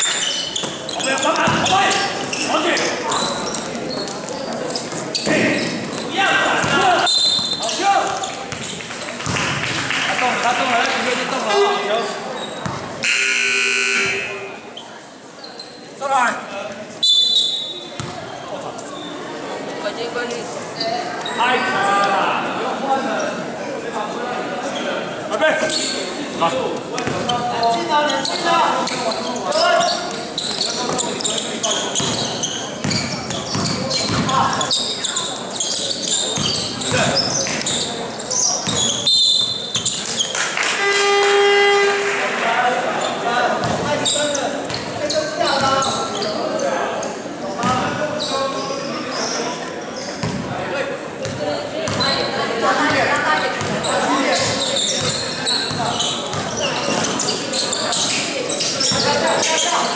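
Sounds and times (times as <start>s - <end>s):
game buzzer: 13.0s - 14.5s
basketball bouncing on hardwood: 18.0s - 18.2s.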